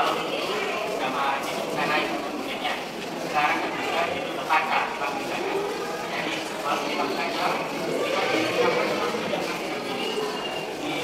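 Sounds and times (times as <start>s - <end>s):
crowd babble: 0.0s - 11.0s.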